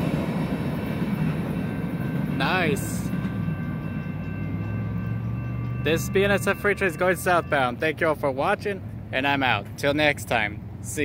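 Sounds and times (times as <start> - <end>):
freight train rolling rumble: 0.0 - 11.0.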